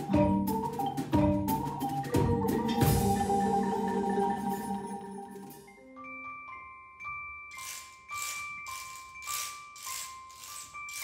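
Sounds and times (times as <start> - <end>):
ringing glockenspiel notes: 0.0 - 11.0
shaker: 7.5 - 11.0.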